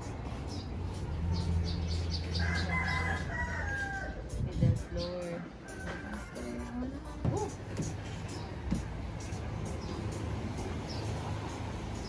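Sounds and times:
rooster crowing: 2.2s - 4.3s, 5.4s - 6.9s.

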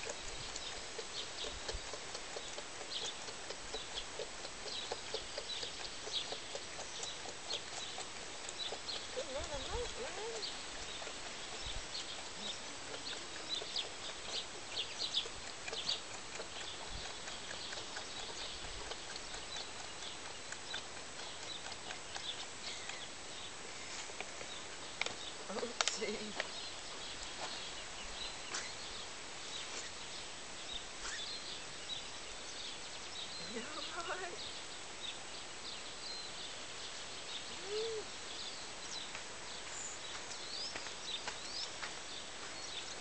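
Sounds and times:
lamb sucking from bottle: 0.0s - 24.6s
outdoor hiss: 22.4s - 43.0s.

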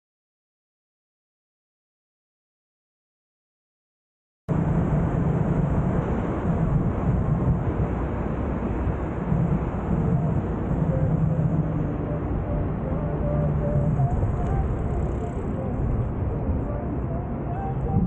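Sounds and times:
road noise from moving vehicle: 4.5s - 18.0s
wind rushing: 4.5s - 18.0s.

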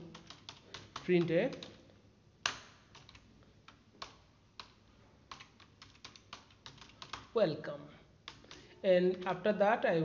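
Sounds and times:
computer keyboard keystrokes: 0.0s - 1.8s, 2.4s - 7.4s, 8.2s - 8.7s.

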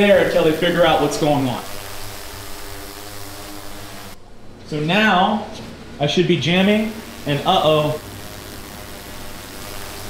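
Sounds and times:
low constant hum: 0.0s - 10.0s
room hiss: 0.0s - 10.0s.

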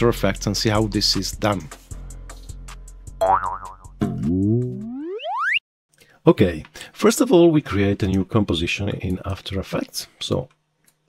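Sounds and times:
cartoon boing: 3.2s - 5.6s.

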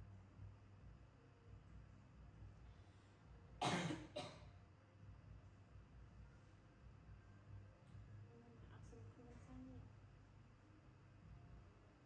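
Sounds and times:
woman coughing: 3.6s - 4.5s.

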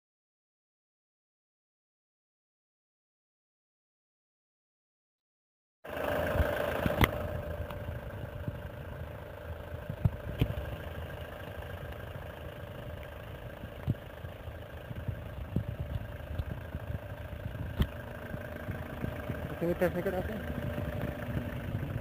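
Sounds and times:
van engine idling: 5.9s - 22.0s.

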